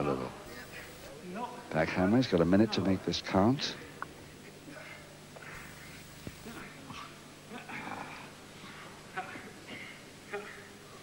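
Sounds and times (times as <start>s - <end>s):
low hum: 5.4s - 6.7s.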